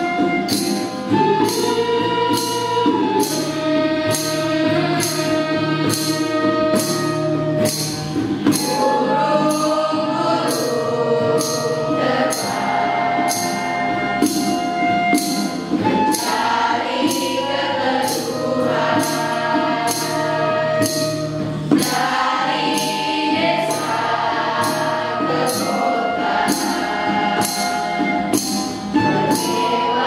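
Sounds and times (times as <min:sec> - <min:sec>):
acoustic guitar: 0:00.0 - 0:30.0
crisp high percussive strikes: 0:00.0 - 0:30.0
choir singing slow song: 0:08.4 - 0:14.3, 0:15.8 - 0:30.0.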